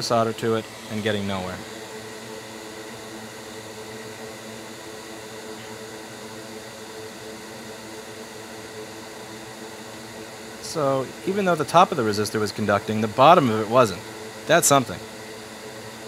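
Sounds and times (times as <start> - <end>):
faint hum: 0.0 - 16.0
steady machine hiss: 0.0 - 16.0.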